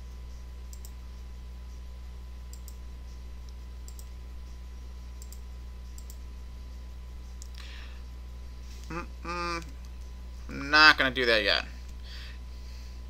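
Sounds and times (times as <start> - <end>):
low electrical hum: 0.0 - 13.0
computer mouse clicking: 0.7 - 1.0, 2.5 - 2.8, 3.4 - 4.2, 5.2 - 5.4, 6.0 - 6.2.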